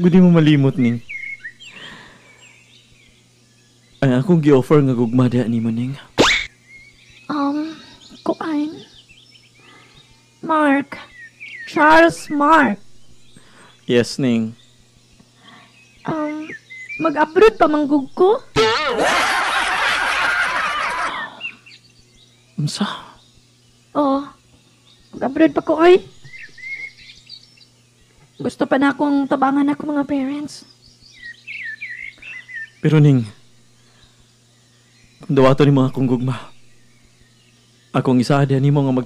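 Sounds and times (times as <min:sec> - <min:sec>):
faint bird chirps: 0:00.0 - 0:39.0
low steady hum: 0:00.0 - 0:39.0.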